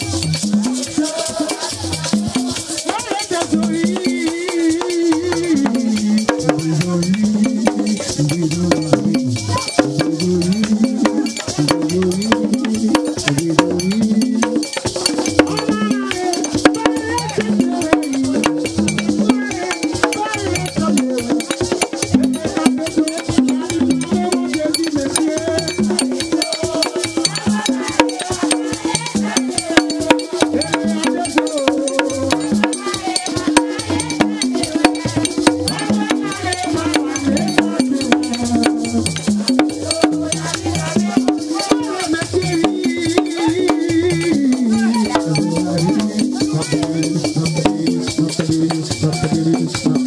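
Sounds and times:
hand drums in dense rhythm: 0.0s - 50.0s
voices singing a chant: 0.0s - 50.0s.

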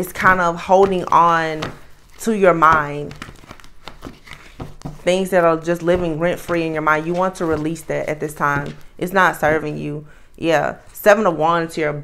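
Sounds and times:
cards clicking and rustling: 0.8s - 5.0s.

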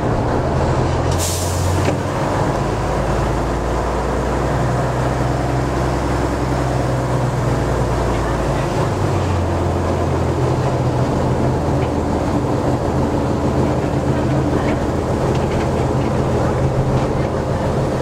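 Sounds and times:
diesel locomotive engine running: 0.0s - 18.0s.

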